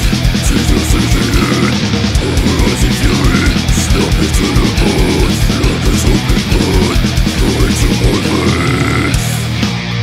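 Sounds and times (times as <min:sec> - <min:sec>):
rapid kick drumming: 0:00.0 - 0:08.6
distorted guitars: 0:00.0 - 0:10.0
guttural growled vocals: 0:00.4 - 0:09.4.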